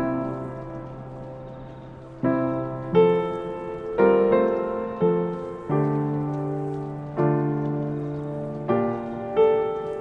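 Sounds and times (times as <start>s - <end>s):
faint background hiss: 0.0s - 10.0s
gentle piano music: 0.0s - 10.0s.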